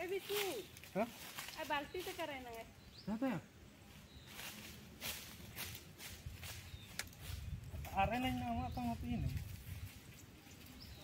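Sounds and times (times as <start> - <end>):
footsteps crunching on dry leaves: 0.0 - 2.7, 3.8 - 11.0.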